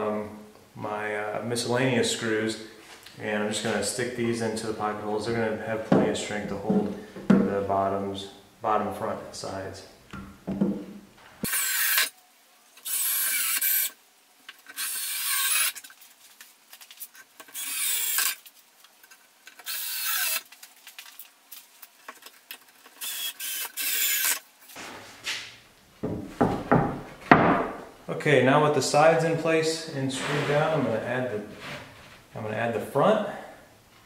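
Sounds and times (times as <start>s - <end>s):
knocks: 10.2s - 11.0s, 26.0s - 27.8s
cordless drill driving screws: 11.4s - 12.1s, 12.8s - 14.0s, 14.7s - 15.8s, 17.5s - 18.4s, 19.6s - 20.4s, 23.0s - 24.4s.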